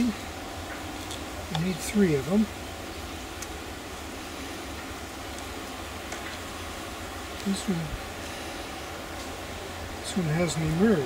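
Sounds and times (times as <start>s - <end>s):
even hiss: 0.0s - 11.0s
steady low hum: 0.0s - 11.0s.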